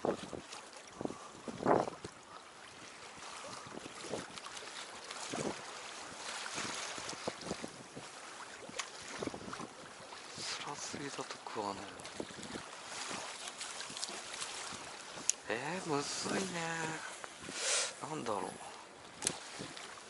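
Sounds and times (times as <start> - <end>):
wind on microphone: 0.0 - 4.5, 5.2 - 10.5, 12.0 - 17.7, 19.0 - 20.0
water lapping against boat: 0.0 - 20.0
knocks or splashes: 11.2 - 15.4, 19.2 - 19.9.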